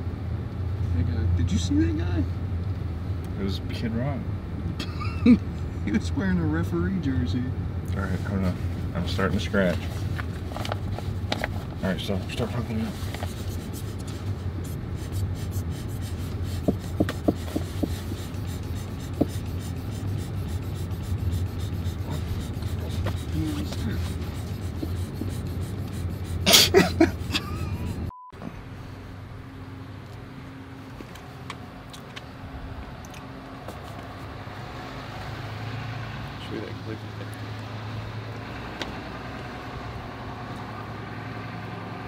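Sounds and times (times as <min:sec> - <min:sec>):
car idling low hum: 0:00.8 - 0:34.4.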